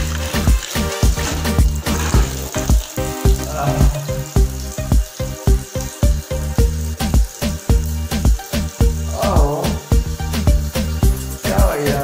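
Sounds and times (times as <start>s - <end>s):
music with drum beat and bass: 0.0s - 12.0s
water pouring onto tiled floor: 0.0s - 12.0s.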